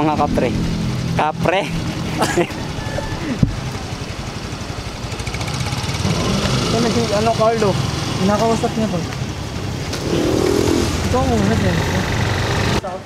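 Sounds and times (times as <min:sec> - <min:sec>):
scooter engine rumbling: 0:00.0 - 0:12.8.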